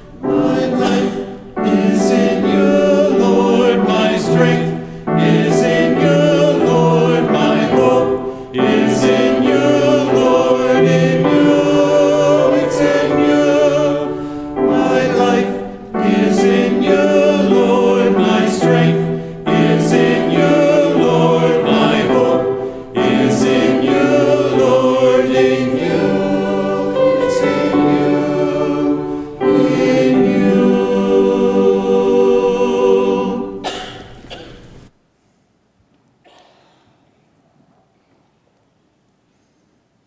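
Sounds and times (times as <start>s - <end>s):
mixed choir singing: 0.0s - 34.4s.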